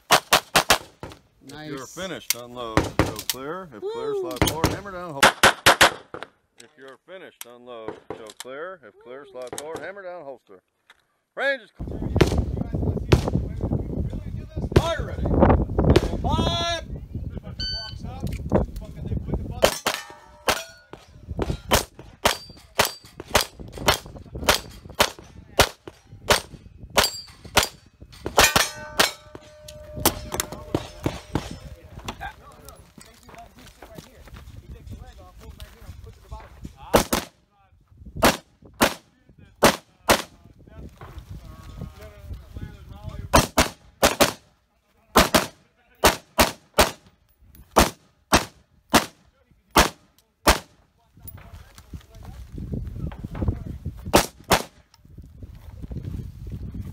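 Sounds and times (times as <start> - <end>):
rifle shots: 0.1 - 1.0, 36.9 - 37.4, 38.2 - 39.0, 43.4 - 44.4, 45.2 - 47.1, 47.8 - 49.2, 49.8 - 50.8, 54.1 - 54.8
ringing steel targets: 17.6 - 18.0, 19.7 - 31.9
pistol shots: 43.4 - 44.4, 45.2 - 47.0, 47.8 - 49.2, 49.8 - 50.8, 54.1 - 54.8.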